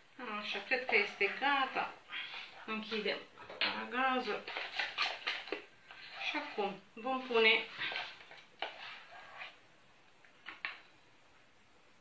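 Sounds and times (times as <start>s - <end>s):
spoon scraping saucepan: 0.3s - 9.6s.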